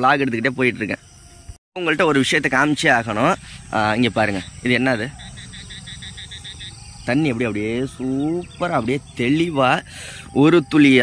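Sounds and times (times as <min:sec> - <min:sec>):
frog calling: 0:00.0 - 0:11.0.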